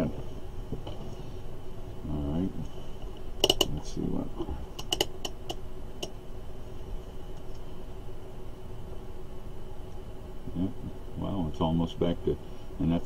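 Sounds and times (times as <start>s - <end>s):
background hum: 0.0s - 13.0s.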